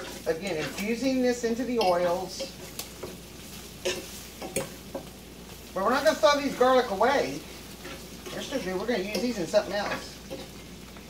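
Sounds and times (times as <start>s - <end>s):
stirring clicks: 0.0s - 5.2s
garlic sizzling in hot oil: 0.0s - 11.0s.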